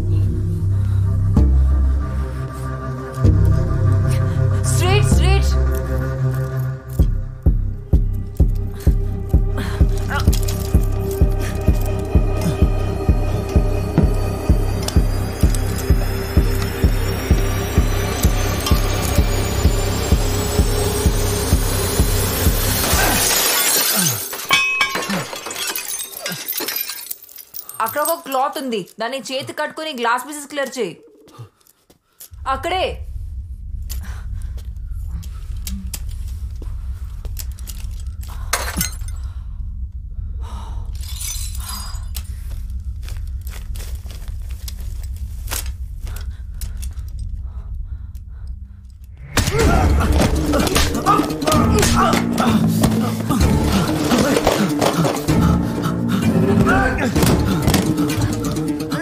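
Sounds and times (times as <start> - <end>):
steady low drone: 0.0 - 22.9, 32.4 - 59.0
suspense film score: 0.0 - 23.4, 30.2 - 59.0
glass pane shattering: 22.7 - 28.3, 38.5 - 39.2, 41.0 - 42.1
glass shards tinkling: 22.7 - 28.9, 41.0 - 42.3.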